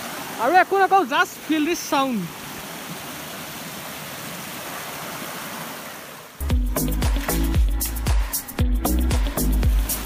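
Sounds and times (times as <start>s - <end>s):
stream water splashing over rocks: 0.0s - 6.4s, 9.2s - 10.0s
music with a heavy beat: 6.4s - 10.0s.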